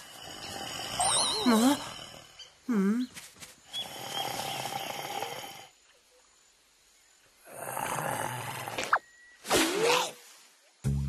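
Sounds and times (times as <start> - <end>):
cartoon animal snore-like growls: 0.0 - 2.4, 3.8 - 5.7, 7.4 - 8.9.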